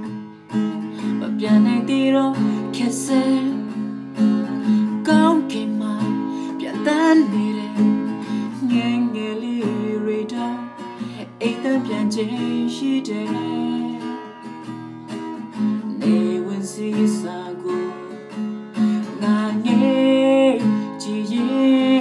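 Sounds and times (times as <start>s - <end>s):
acoustic guitar strumming: 0.0s - 22.0s
man singing: 1.2s - 3.7s, 5.0s - 7.9s, 8.5s - 14.2s, 15.9s - 18.2s, 18.8s - 22.0s.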